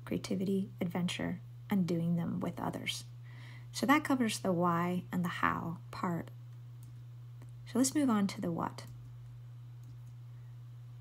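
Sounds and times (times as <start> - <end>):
steady low hum: 0.0 - 11.0
faint clicks: 8.8 - 10.2.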